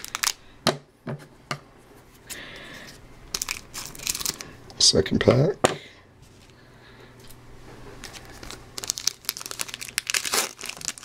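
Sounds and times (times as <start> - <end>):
card pack wrapper torn open: 0.0 - 0.4, 3.3 - 4.4, 8.0 - 11.0
wrapper crackling: 0.0 - 0.4, 3.3 - 4.5, 8.0 - 11.0.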